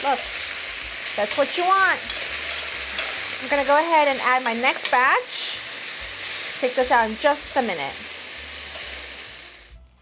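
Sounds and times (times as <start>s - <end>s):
meat sizzling in a skillet: 0.0s - 9.8s.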